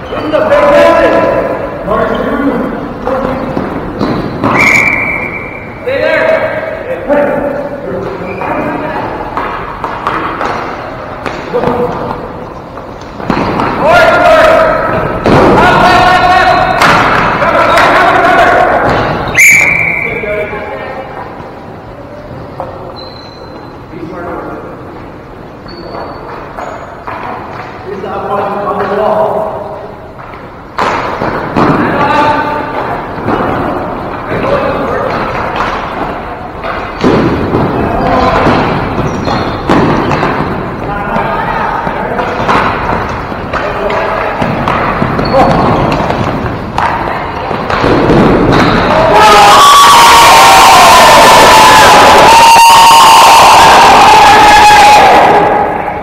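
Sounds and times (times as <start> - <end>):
players' voices: 0.0 - 23.0, 27.0 - 56.0
thump in a gym: 14.8 - 17.4, 18.7 - 19.4, 30.7 - 49.4.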